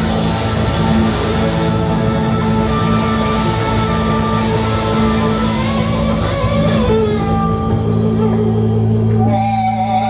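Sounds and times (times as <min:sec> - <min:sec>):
gliding lead guitar line: 0:00.0 - 0:10.0
live rock band playing: 0:00.0 - 0:10.0.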